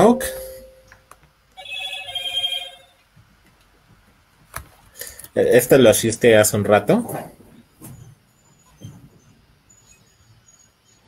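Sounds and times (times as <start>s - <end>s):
electronic ringtone trilling: 1.6s - 3.0s.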